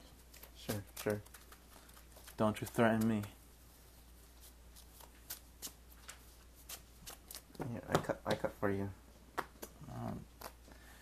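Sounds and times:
cards being shuffled: 0.2 - 3.4, 4.3 - 8.4, 9.4 - 10.6.

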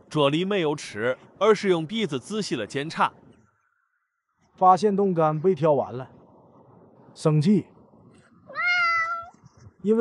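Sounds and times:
cat meowing: 8.5 - 9.4.

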